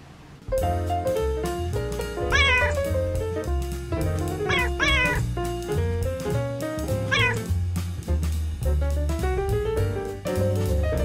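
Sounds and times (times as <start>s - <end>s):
upbeat music with stepping bass: 0.5s - 11.0s
cat meowing: 2.3s - 3.0s, 4.4s - 5.3s, 7.1s - 7.5s.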